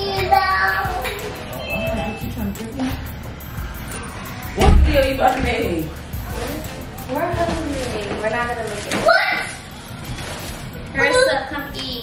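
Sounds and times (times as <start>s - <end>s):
background music: 0.0s - 12.0s
front door shutting thump: 4.6s - 5.0s.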